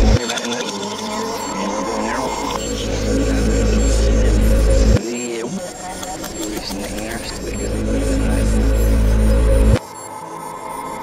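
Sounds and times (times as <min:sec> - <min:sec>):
heavy bass: 0:00.0 - 0:00.2, 0:01.6 - 0:05.0, 0:06.7 - 0:09.8
gliding synth effects: 0:00.0 - 0:11.0
reversed voice sample: 0:00.0 - 0:11.0.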